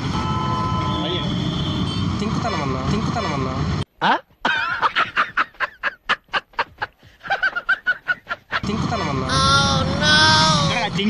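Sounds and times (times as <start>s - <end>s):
outdoor traffic noise: 0.0s - 3.9s, 8.9s - 11.0s
men exclaiming and talking: 8.6s - 11.0s.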